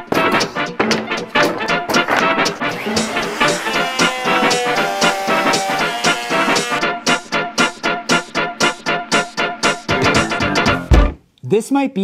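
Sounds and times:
upbeat instrumental music: 0.0 - 11.3.

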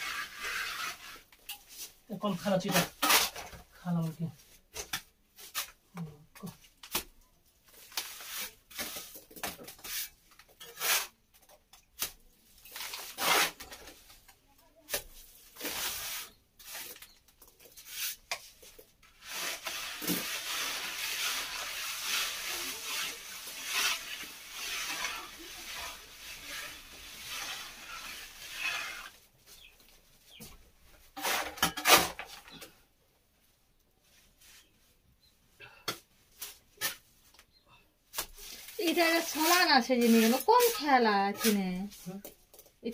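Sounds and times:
trowel scraping plaster on wall: 0.0 - 1.4, 2.7 - 3.6, 8.0 - 11.3, 13.0 - 13.8, 17.7 - 29.7, 31.2 - 32.6, 38.2 - 42.1.

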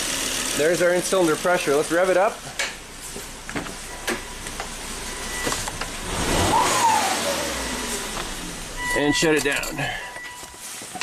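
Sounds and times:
car engine idling and revving: 0.0 - 11.0.

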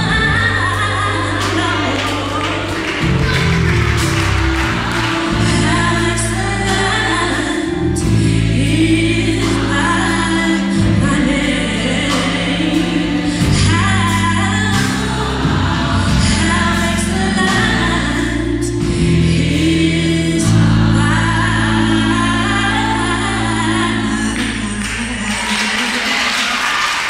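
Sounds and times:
held bass notes: 0.0 - 25.3
gospel choir singing: 0.0 - 27.0
live band accompanying: 0.0 - 27.0.

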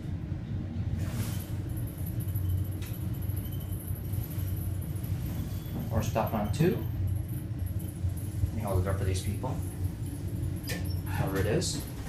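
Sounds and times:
elevator hum: 0.0 - 12.0.

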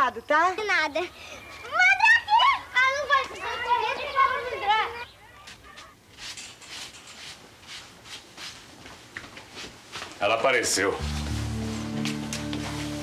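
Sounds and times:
children's high voices: 0.0 - 6.0.

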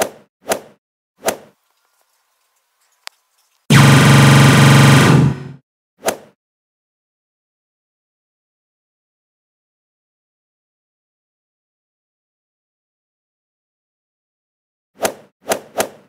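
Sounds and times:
laser beam effect: 3.7 - 5.6.

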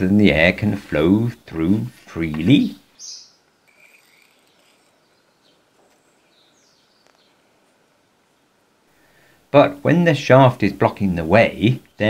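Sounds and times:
faint bird chirps: 2.9 - 8.6.

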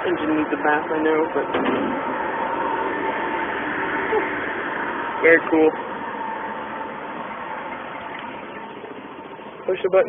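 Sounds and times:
car engine idling: 0.0 - 10.0
thin steady whine: 0.0 - 10.0.

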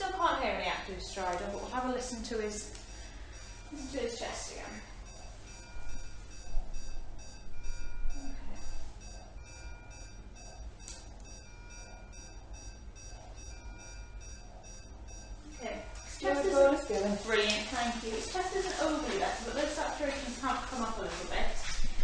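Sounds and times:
medical equipment alarm beeping: 0.0 - 22.0.

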